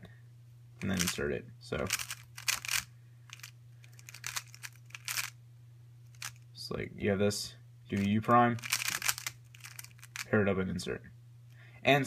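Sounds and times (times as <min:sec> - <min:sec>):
steady low hum: 0:00.0 - 0:12.0
puzzle cube clicking and rattling: 0:00.8 - 0:01.2, 0:01.8 - 0:05.4, 0:06.1 - 0:06.4, 0:08.0 - 0:10.3.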